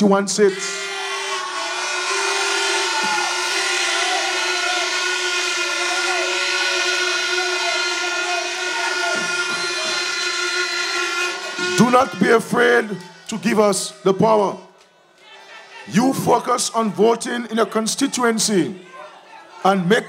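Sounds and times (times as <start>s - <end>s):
horns blowing steady notes: 0.0s - 14.6s
crowd cheering: 0.4s - 20.0s
person giving a speech: 11.6s - 14.7s.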